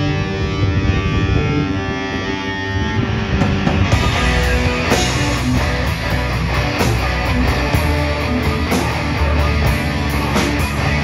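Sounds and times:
bass guitar chords: 0:00.0 - 0:11.0
distorted electric guitars: 0:00.0 - 0:11.0
drum and cymbal hits: 0:03.6 - 0:11.0.

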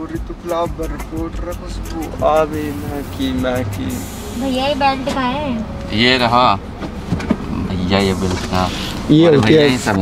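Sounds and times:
car engine idling: 0:00.0 - 0:10.0
indistinct voices talking: 0:00.0 - 0:10.0.

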